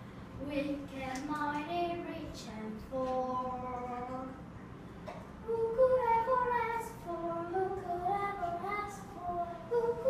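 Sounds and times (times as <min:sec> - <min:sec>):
girl singing slow melody: 0:00.3 - 0:04.6, 0:05.2 - 0:10.0.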